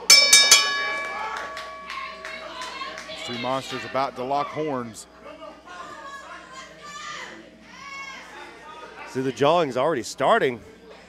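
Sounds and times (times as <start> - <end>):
metal ring bell struck: 0.0 - 2.6.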